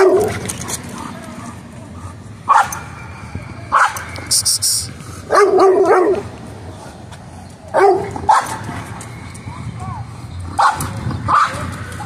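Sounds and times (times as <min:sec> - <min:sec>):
dog barking and yipping: 0:02.5 - 0:03.0, 0:03.7 - 0:04.1, 0:05.3 - 0:06.3, 0:07.7 - 0:08.7, 0:10.6 - 0:11.7.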